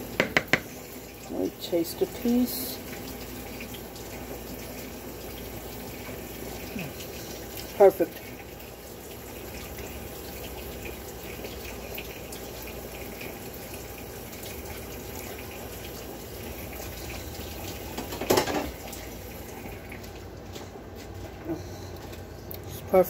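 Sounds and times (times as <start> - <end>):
water running from a tap: 0.0 - 20.5.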